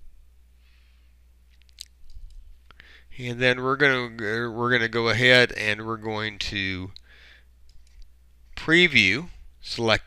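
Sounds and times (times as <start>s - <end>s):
steady low hum: 0.0s - 10.0s
computer mouse clicks: 7.7s - 8.1s.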